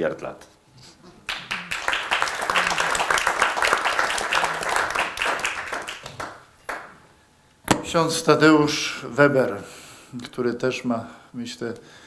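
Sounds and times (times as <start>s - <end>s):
audience applauding: 1.2s - 7.0s.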